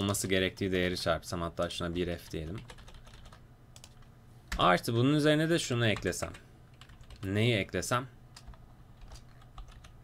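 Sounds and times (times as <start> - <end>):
computer keyboard typing: 2.3 - 4.6, 5.9 - 7.3, 8.4 - 10.0.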